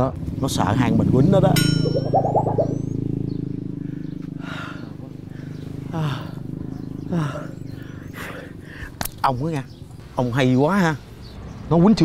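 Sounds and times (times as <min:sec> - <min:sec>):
men panting: 0:03.7 - 0:09.0.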